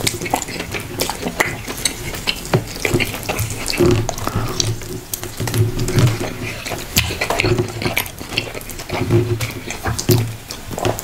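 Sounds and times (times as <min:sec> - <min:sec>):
wet chewing and lip smacking: 0:00.0 - 0:11.0
sharp mouth clicks: 0:03.4 - 0:04.9
man humming low: 0:04.0 - 0:04.8.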